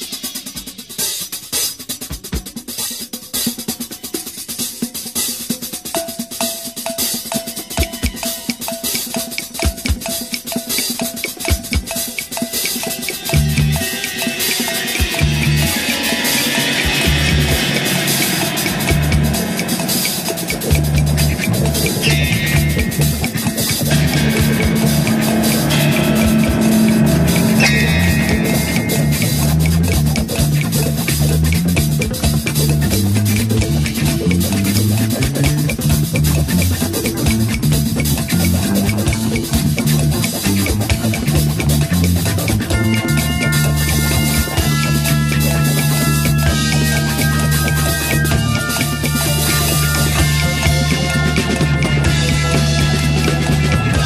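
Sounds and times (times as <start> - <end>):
rock drum kit playing fast: 0.0 - 54.0
high ringing knock: 16.6 - 30.7
bass line of low notes: 16.9 - 46.0.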